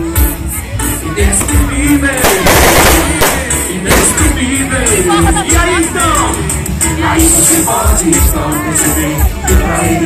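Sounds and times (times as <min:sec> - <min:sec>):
music from loudspeaker truck: 0:00.0 - 0:10.0
firecrackers crackling: 0:02.2 - 0:04.6.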